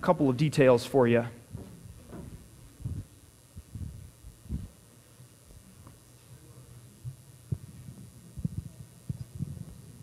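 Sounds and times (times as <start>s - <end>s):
faint low hum: 0.0s - 10.0s
footsteps of people walking: 1.5s - 4.8s.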